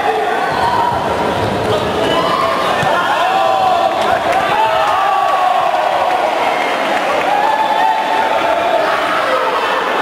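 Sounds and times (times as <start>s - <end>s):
crowd cheering and shouting: 0.0s - 10.0s
raised voices: 0.0s - 10.0s.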